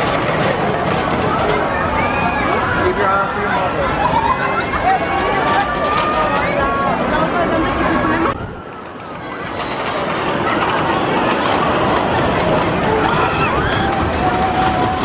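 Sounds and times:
crowd chatter: 0.0s - 15.0s
roller coaster rolling on track: 0.0s - 15.0s
voices: 0.0s - 15.0s.

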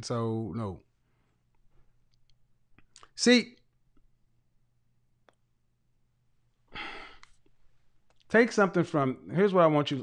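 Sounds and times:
man sighing: 6.7s - 7.3s.

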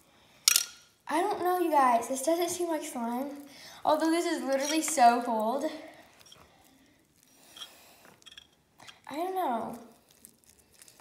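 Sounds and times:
slime squishing and scraping: 8.9s - 11.0s.

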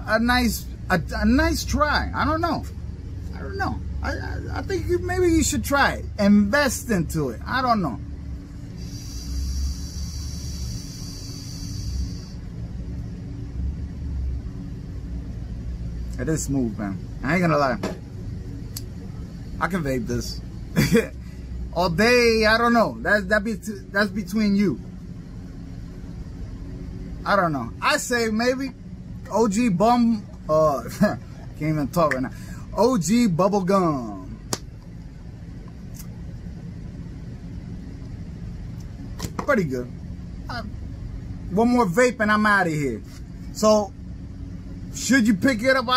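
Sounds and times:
steady low rumble: 0.0s - 45.9s
vape hissing: 8.8s - 12.5s
sharp click: 34.5s - 34.7s.

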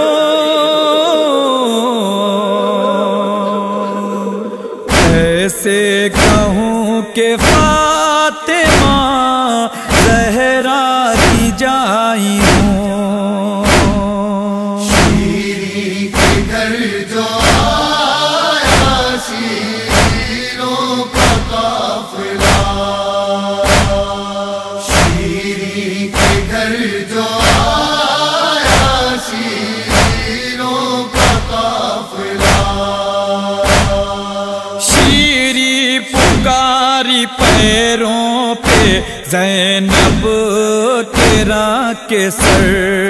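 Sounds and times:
men chanting a lament in chorus: 0.0s - 43.0s
chest-beating slaps: 4.9s - 5.4s, 6.1s - 6.6s, 7.4s - 7.9s, 8.6s - 9.1s, 9.9s - 10.4s, 11.2s - 11.6s, 12.4s - 12.9s, 13.6s - 14.2s, 14.9s - 15.5s, 16.1s - 16.7s, 17.4s - 17.8s, 18.5s - 19.2s, 19.8s - 23.0s, 23.6s - 26.8s, 27.4s - 28.0s, 28.6s - 30.5s, 31.1s - 33.0s, 33.6s - 34.3s, 34.9s - 35.3s, 36.2s - 36.6s, 37.4s - 37.8s, 38.6s - 39.1s, 39.9s - 40.3s, 41.2s - 41.6s, 42.4s - 42.8s
deep drum thumps: 4.9s - 5.4s, 6.2s - 6.6s, 7.4s - 7.9s, 8.7s - 9.1s, 9.9s - 10.3s, 11.2s - 11.6s, 12.4s - 12.9s, 13.7s - 14.2s, 14.9s - 15.4s, 16.2s - 16.6s, 17.4s - 17.8s, 18.7s - 19.1s, 19.9s - 20.4s, 21.2s - 21.7s, 22.4s - 22.9s, 23.6s - 24.2s, 24.9s - 25.4s, 26.2s - 26.6s, 27.4s - 27.8s, 29.9s - 30.4s, 31.2s - 31.6s, 32.4s - 32.9s, 33.6s - 34.2s, 36.2s - 36.6s, 39.9s - 40.4s.

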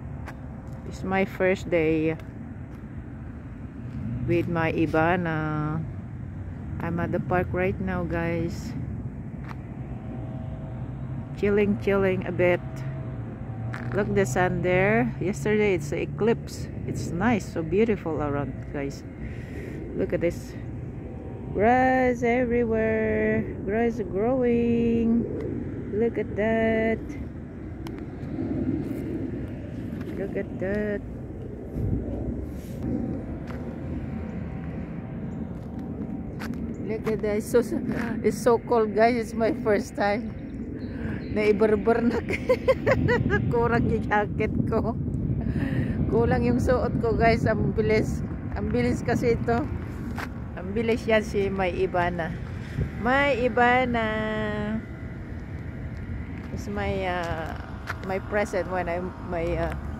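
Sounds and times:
street traffic rumble: 0.0s - 59.9s
bike tyres on pavement: 27.2s - 38.3s.

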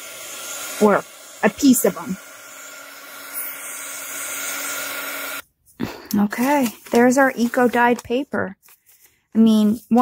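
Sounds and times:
heat gun fan whirring: 0.0s - 5.4s.

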